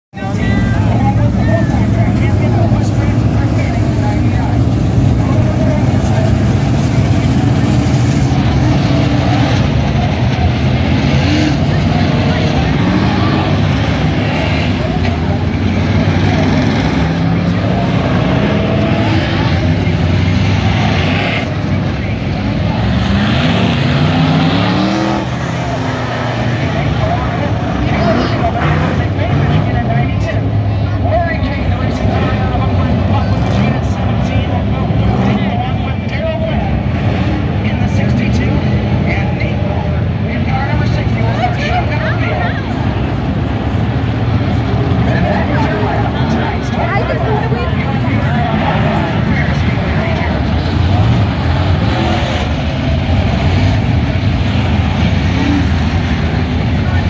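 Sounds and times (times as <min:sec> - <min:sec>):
race car engines rising and falling: 0:00.2 - 0:57.0.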